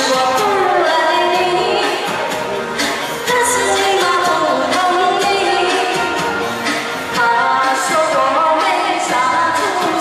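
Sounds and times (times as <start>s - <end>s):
woman singing into a microphone: 0.0s - 2.4s, 3.0s - 10.0s
pop backing track: 0.0s - 10.0s.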